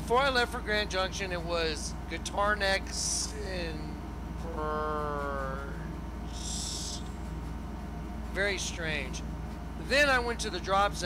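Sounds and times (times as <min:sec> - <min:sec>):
low electrical hum: 0:00.0 - 0:11.0
man holding drawn-out vowel: 0:04.4 - 0:07.1.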